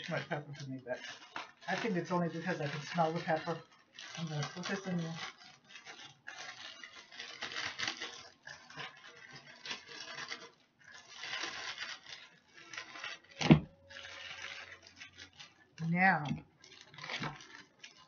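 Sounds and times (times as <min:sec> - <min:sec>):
plastic bag rustling and crinkling: 0:00.0 - 0:18.0.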